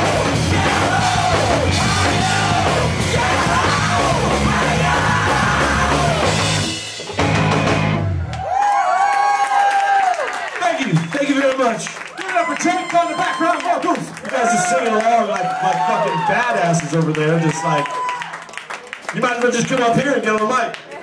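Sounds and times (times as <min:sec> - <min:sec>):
live rock band playing: 0:00.0 - 0:08.4.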